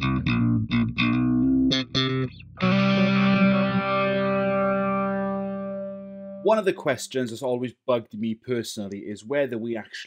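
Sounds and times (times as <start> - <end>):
distorted bass guitar chord ringing: 0.0 - 6.5.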